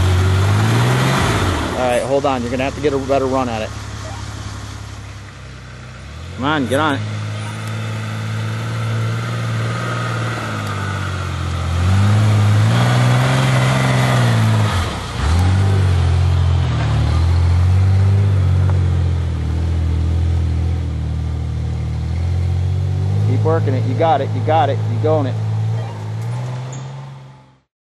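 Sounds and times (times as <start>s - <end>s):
truck engine revving hard: 0.0s - 5.1s, 5.8s - 27.7s.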